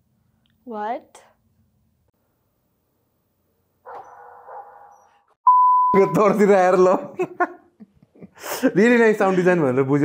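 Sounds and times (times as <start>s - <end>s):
steady high beep: 5.5s - 6.4s.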